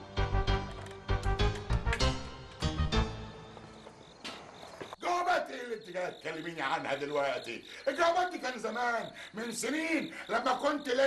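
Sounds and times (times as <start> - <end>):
background music: 0.0 - 4.1
crickets chirping: 2.7 - 11.0.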